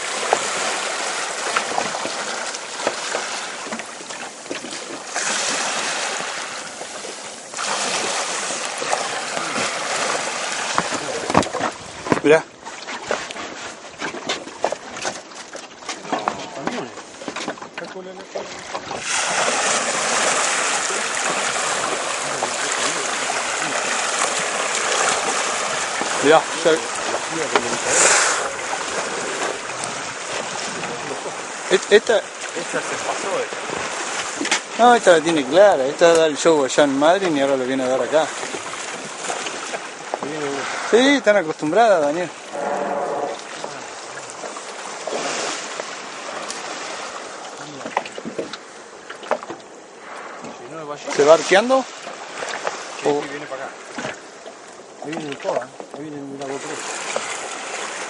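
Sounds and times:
water rushing over whale: 0:00.0 - 0:58.0.

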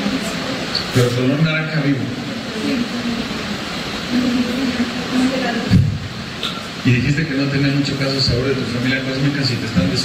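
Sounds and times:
rushing room noise: 0:00.0 - 0:10.0.

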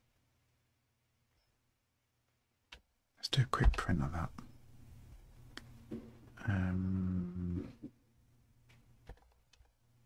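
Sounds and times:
man humming: 0:06.4 - 0:07.9.

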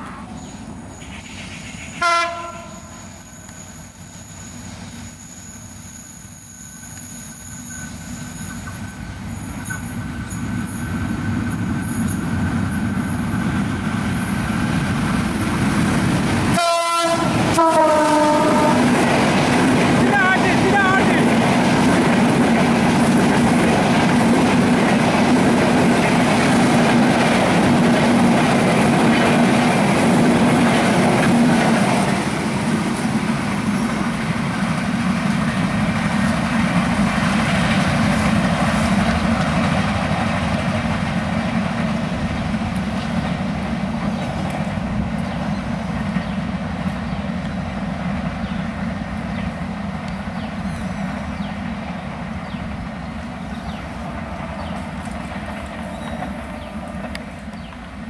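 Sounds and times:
train wheels rumbling and clattering: 0:00.0 - 0:58.0
diesel locomotive horn: 0:01.9 - 0:03.2, 0:16.5 - 0:19.0.

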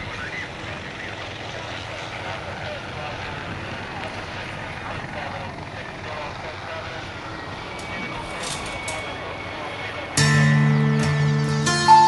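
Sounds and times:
steady rumbling noise: 0:00.0 - 0:10.2
faint voices: 0:00.0 - 0:10.9.

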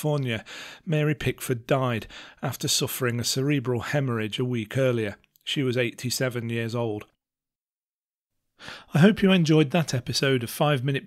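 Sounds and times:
man speaking: 0:00.0 - 0:07.2, 0:08.9 - 0:11.0
man breathing in: 0:00.4 - 0:00.9, 0:02.1 - 0:02.4, 0:08.6 - 0:09.0.

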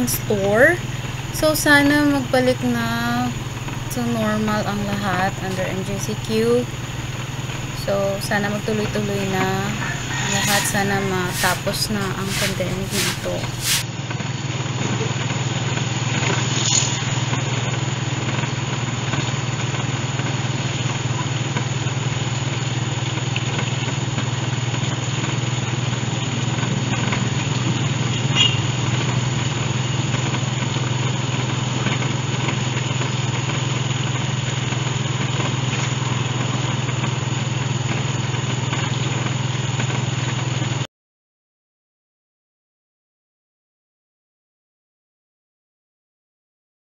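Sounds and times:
motorcycle engine droning: 0:00.0 - 0:13.8.

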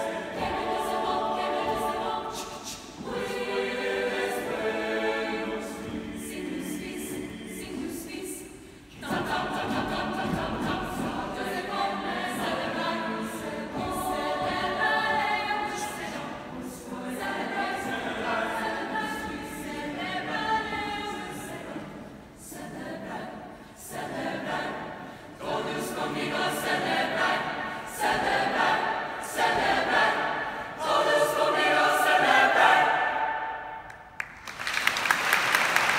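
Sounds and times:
choir singing: 0:00.0 - 0:34.2
audience applause: 0:34.2 - 0:35.9.

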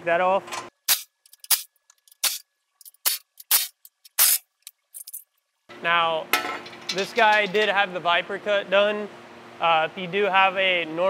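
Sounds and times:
impact tool bursts: 0:00.8 - 0:02.4, 0:03.0 - 0:04.5
small metal clicks: 0:01.2 - 0:05.3.

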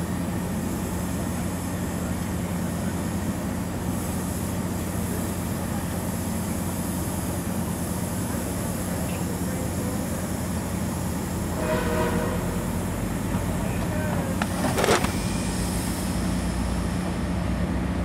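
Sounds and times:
diesel locomotive humming: 0:00.0 - 0:18.0.

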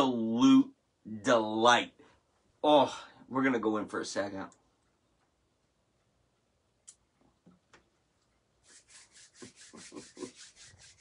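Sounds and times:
palms rubbing together: 0:08.6 - 0:11.0.

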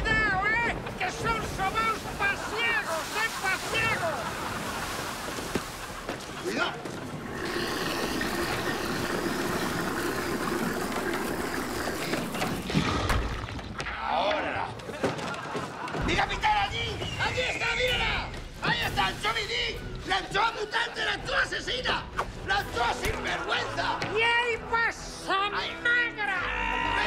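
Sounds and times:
wind: 0:00.0 - 0:12.8
waves: 0:00.0 - 0:13.3.

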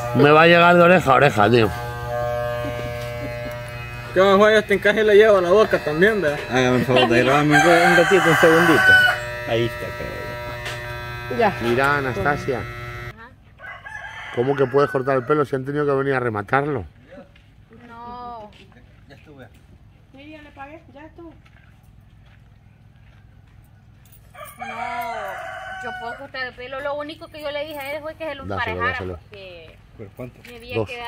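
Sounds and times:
electric hair clipper buzzing: 0:00.0 - 0:13.2
rooster crowing: 0:07.0 - 0:09.4, 0:13.6 - 0:15.6, 0:24.3 - 0:26.4.

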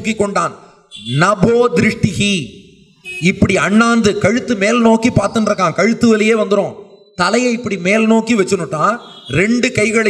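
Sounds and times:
man speaking into a microphone: 0:00.0 - 0:10.0.

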